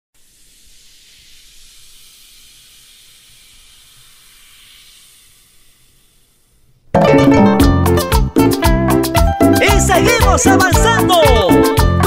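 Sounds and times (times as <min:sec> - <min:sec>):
faint steady hiss: 0:00.2 - 0:06.9.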